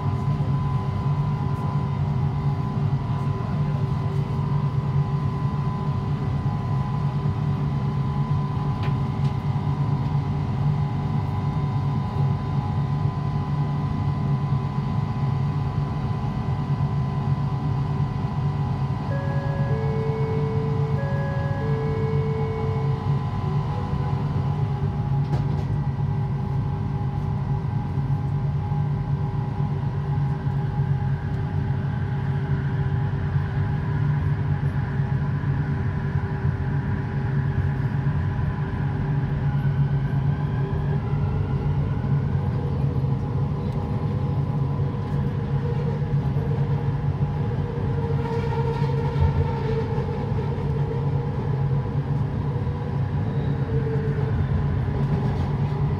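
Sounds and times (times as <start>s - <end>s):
rising motor whine: 19.0s - 25.2s
train motor humming: 19.0s - 25.8s.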